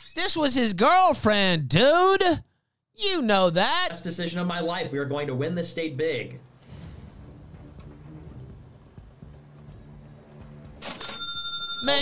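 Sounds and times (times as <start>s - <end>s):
faint background music: 3.4s - 12.0s.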